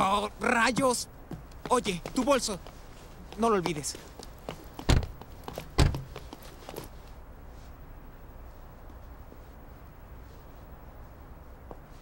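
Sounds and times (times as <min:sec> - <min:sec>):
light footsteps: 0:00.4 - 0:07.8
sliding van door thumping shut: 0:05.8 - 0:06.1.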